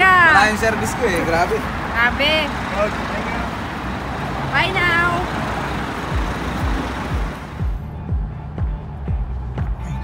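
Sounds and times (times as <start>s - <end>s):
city road traffic: 0.0s - 10.0s
bass drum thumps of music: 6.1s - 10.0s.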